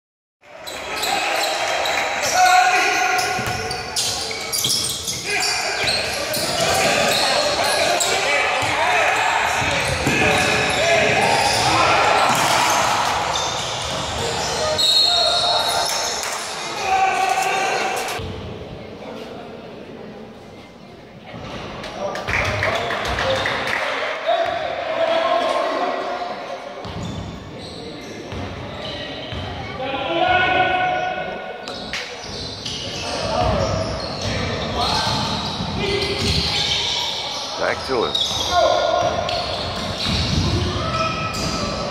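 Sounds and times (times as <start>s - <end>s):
people shouting in a gym: 0.5s - 18.2s, 23.8s - 26.5s, 28.6s - 41.9s
basketball bouncing on court: 3.4s - 3.7s, 33.2s - 36.6s.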